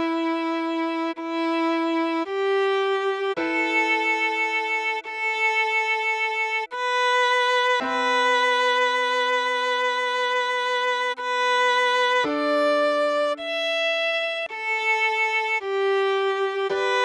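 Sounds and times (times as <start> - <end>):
violin playing slow melody: 0.0 - 17.0.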